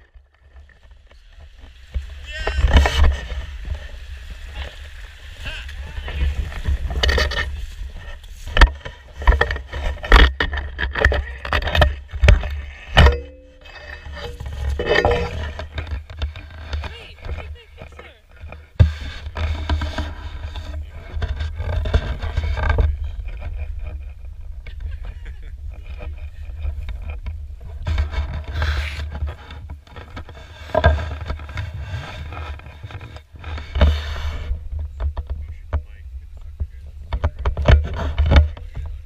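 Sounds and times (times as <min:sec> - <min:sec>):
wading through shallow water: 0:00.3 - 0:10.4.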